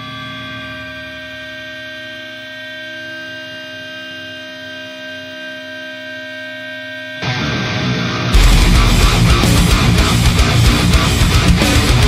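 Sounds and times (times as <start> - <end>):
electronic drone: 7.2 - 12.0.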